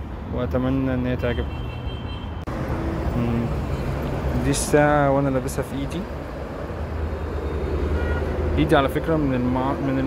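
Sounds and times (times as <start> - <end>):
low rumble of traffic: 0.0 - 10.0.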